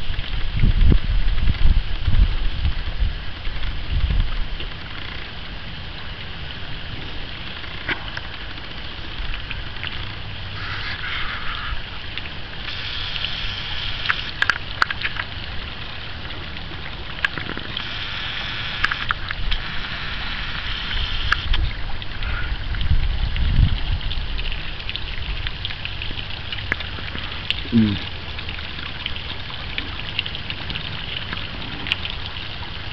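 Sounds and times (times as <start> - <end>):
low wind rumble: 0.0 - 17.3, 19.2 - 26.2
fountain splashing into pond: 0.0 - 32.9
sharp clicks: 17.2 - 21.6.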